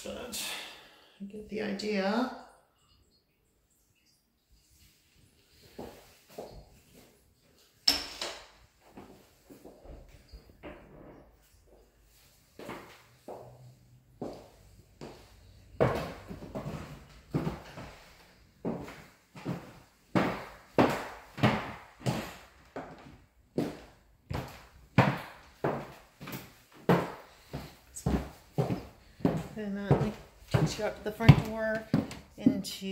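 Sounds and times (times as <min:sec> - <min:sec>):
footsteps on hardwood floor: 0:12.2 - 0:32.9.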